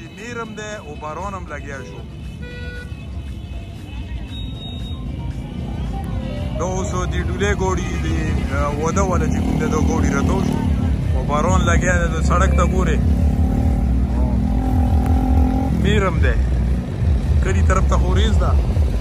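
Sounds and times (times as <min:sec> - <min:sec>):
road traffic passing: 0:00.0 - 0:19.0
motorcycle engine: 0:05.4 - 0:19.0.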